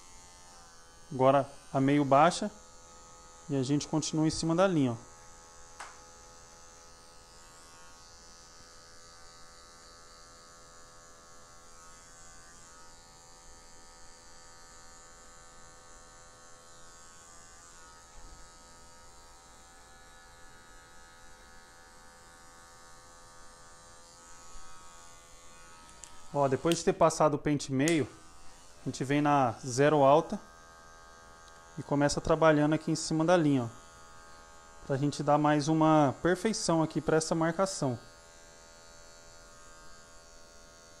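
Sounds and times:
electric hair clipper buzzing: 0.0s - 41.0s.

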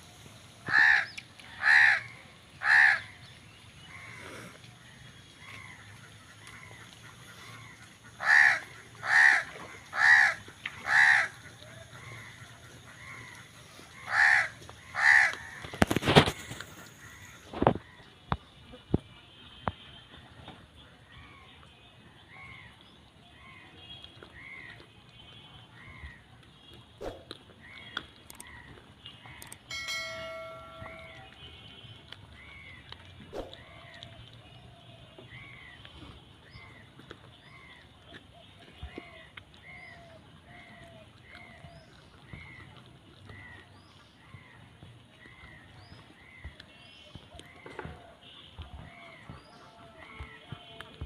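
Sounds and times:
animal harsh calls: 0.7s - 3.1s, 8.2s - 11.4s, 14.0s - 16.2s
bell-like chime: 29.7s - 31.4s.

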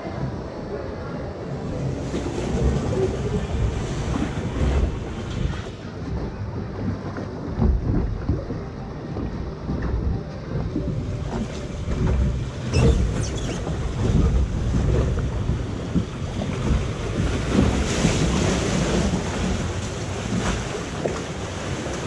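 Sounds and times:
water rushing around boat: 0.0s - 22.0s
wind buffeting microphone: 0.0s - 22.0s.

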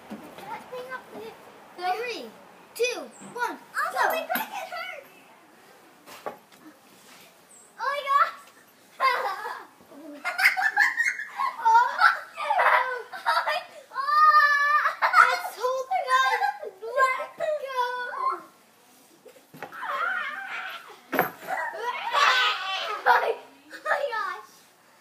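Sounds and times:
children laughing and squealing: 3.8s - 5.1s, 7.8s - 18.6s, 19.2s - 24.6s.

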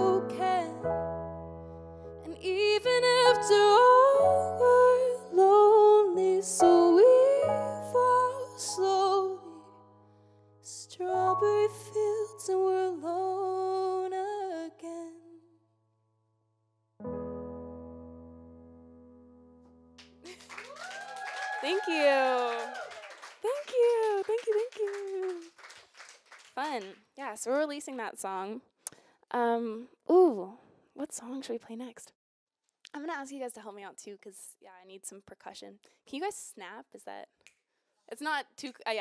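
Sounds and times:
woman singing: 0.0s - 0.9s, 2.2s - 9.7s, 10.7s - 15.5s, 23.5s - 25.5s
piano chords: 0.0s - 14.2s, 17.0s - 20.3s.

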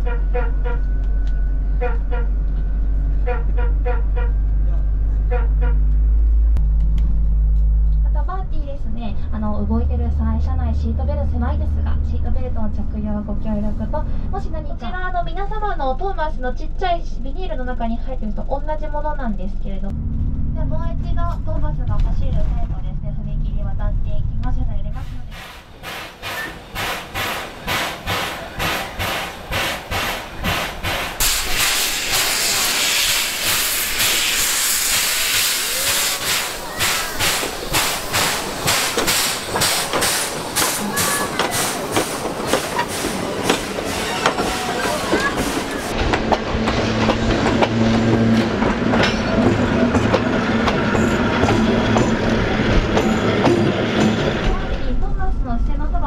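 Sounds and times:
bus engine hum inside cabin: 0.0s - 56.0s
steam locomotive chuffing: 24.9s - 55.4s
steam hissing: 25.3s - 45.9s.

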